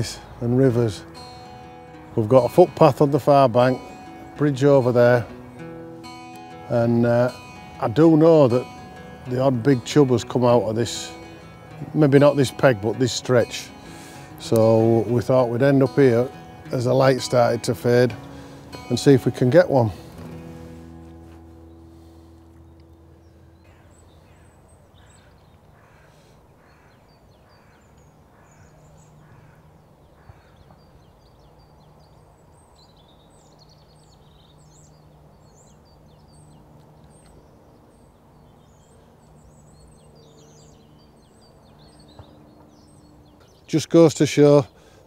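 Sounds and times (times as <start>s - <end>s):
faint background music: 0.0s - 25.2s
small birds twittering: 0.0s - 45.0s
bird calling: 21.5s - 45.0s.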